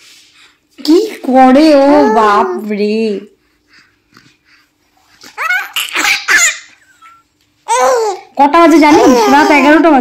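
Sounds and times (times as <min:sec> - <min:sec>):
infant laughing and babbling: 0:01.7 - 0:02.7, 0:05.2 - 0:10.0.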